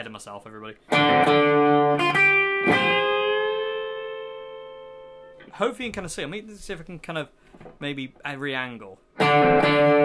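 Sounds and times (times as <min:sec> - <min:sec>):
electric guitar notes ringing: 0:00.9 - 0:05.5, 0:09.2 - 0:10.0.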